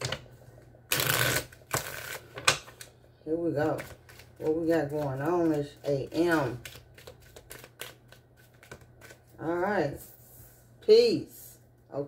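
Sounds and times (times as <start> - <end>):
cards riffling: 3.8 - 9.3
cards snapping: 6.6 - 9.2.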